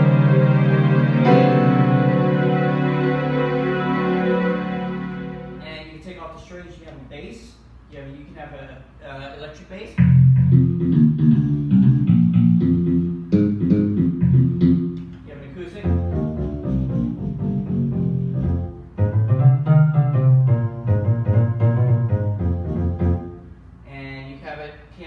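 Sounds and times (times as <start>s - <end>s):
digital piano bass line: 0.0s - 5.7s, 10.0s - 23.5s
higher piano notes: 0.0s - 6.0s, 10.0s - 23.5s.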